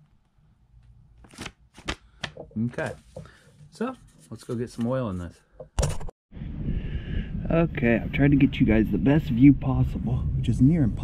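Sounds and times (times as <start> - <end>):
stiff paper card crackling: 1.2 - 2.9.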